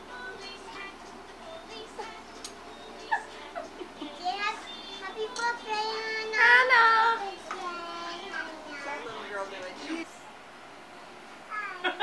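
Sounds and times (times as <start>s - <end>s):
young child singing: 0.0s - 9.1s.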